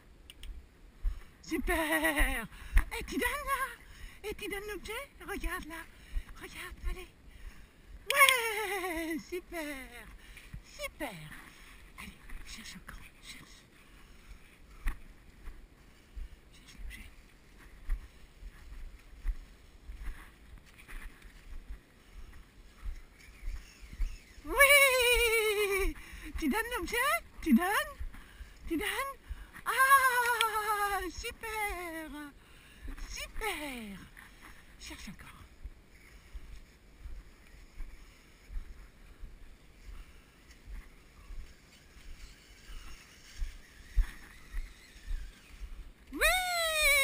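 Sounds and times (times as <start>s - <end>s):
person's wordless call: 24.4s - 28.0s, 28.7s - 32.3s, 46.1s - 47.0s.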